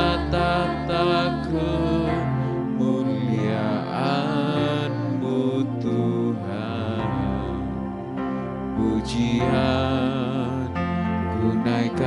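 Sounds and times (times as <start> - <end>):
person singing softly: 0.0 - 8.1, 8.7 - 12.0
electronic keyboard playing chords: 0.0 - 12.0.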